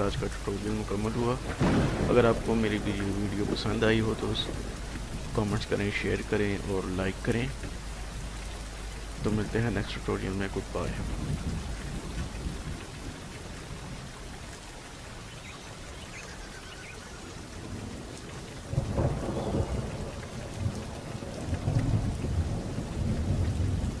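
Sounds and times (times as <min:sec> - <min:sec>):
low thunder rumbles: 0:00.0 - 0:14.2, 0:17.3 - 0:24.0
steady rain hiss: 0:00.0 - 0:24.0.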